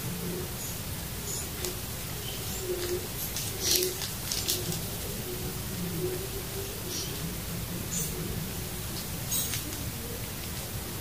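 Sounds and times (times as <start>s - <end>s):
bird cooing low: 0.0s - 11.0s
plastic wrapping crinkling: 2.8s - 4.8s.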